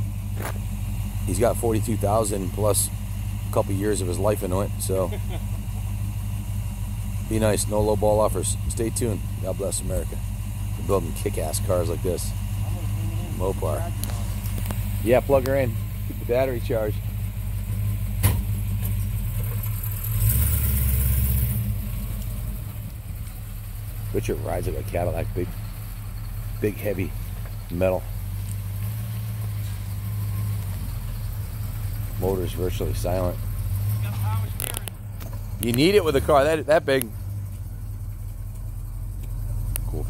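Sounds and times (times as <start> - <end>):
car engine idling and pulling away: 0.0 - 40.0.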